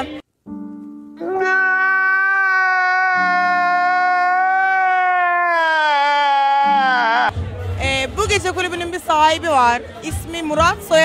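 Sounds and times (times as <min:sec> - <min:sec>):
man wailing: 0:01.2 - 0:07.3.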